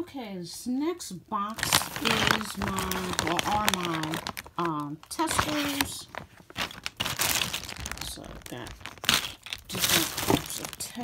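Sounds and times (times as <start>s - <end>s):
packaging rustling and crinkling: 1.5s - 11.0s.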